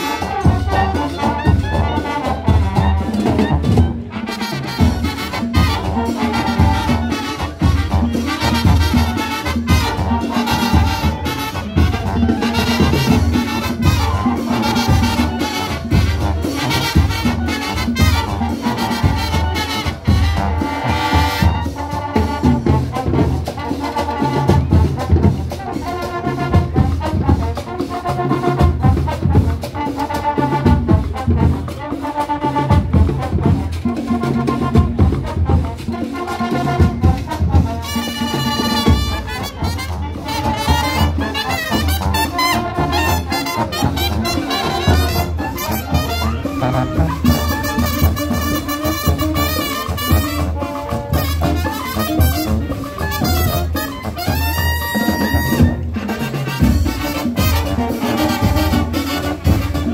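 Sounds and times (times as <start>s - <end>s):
brass section playing: 0.0s - 59.9s
steady drum beat: 0.0s - 59.9s.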